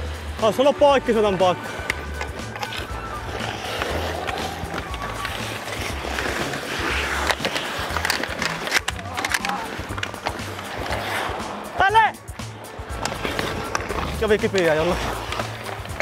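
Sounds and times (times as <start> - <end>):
music with bass beat: 0.0 - 16.0
ice skates scraping: 1.5 - 11.8, 12.8 - 16.0
hockey sticks and puck clacking: 1.6 - 11.8, 12.9 - 16.0.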